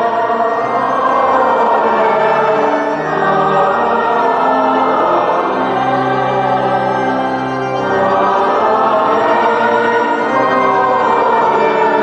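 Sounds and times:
organ accompaniment: 0:00.0 - 0:12.0
voices singing long notes: 0:00.0 - 0:12.0.

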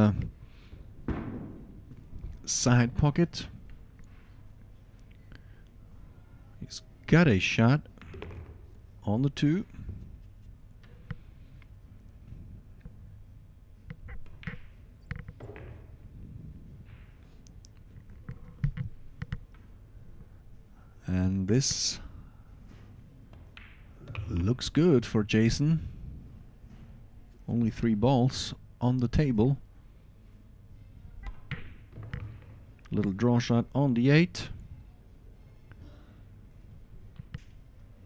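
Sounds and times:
billiard balls clicking: 0:23.3 - 0:24.6.

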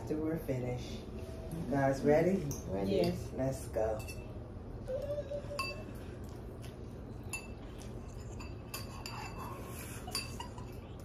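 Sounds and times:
forks clinking against ceramic bowls: 0:02.4 - 0:06.4, 0:07.1 - 0:11.0.

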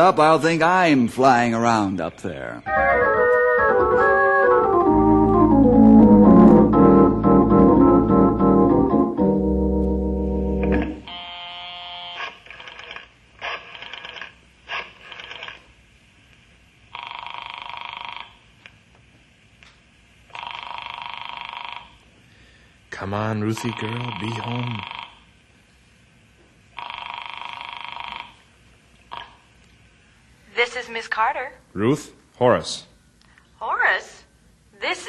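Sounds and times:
descending organ run: 0:02.6 - 0:11.1
telephone ringing: 0:16.9 - 0:18.4, 0:20.3 - 0:22.0, 0:23.5 - 0:25.2, 0:26.8 - 0:28.4.

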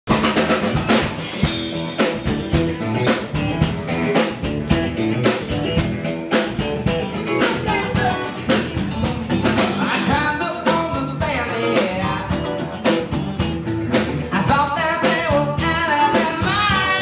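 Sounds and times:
drum kit beats: 0:00.0 - 0:17.0
electric guitar chords: 0:00.1 - 0:17.0.

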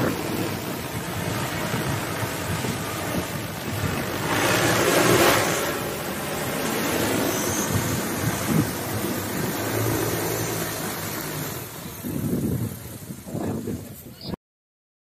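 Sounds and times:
drone propellers humming: 0:00.0 - 0:13.6.

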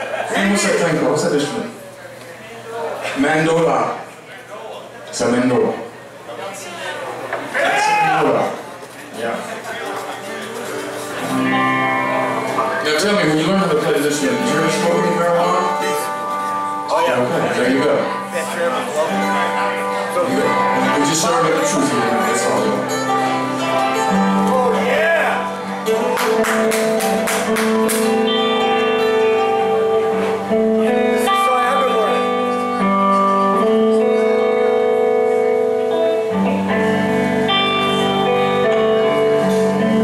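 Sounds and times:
live band electric guitars: 0:07.2 - 0:40.0
plucked string instrument: 0:09.7 - 0:40.0.

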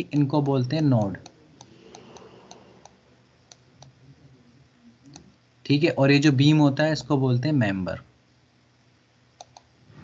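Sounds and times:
computer mouse clicks: 0:00.3 - 0:04.0, 0:05.0 - 0:05.4, 0:09.4 - 0:09.7.

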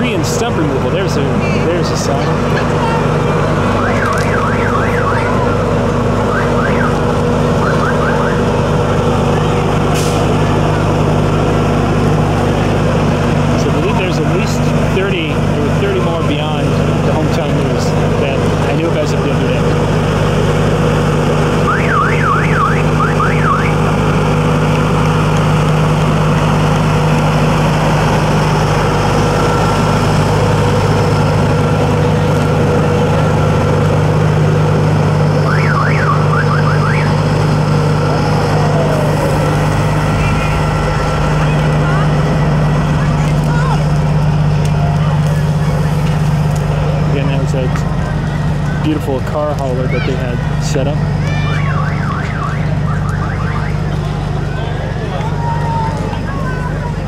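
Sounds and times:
diesel truck engine droning: 0:00.0 - 0:57.0.

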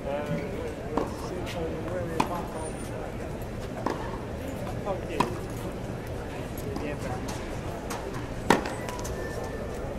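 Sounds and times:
racket striking tennis ball: 0:07.9 - 0:08.7.

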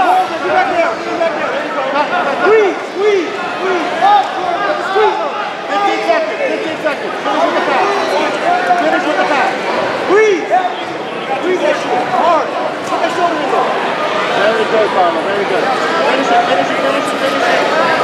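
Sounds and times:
crowd talking and calling out: 0:00.0 - 0:18.0.

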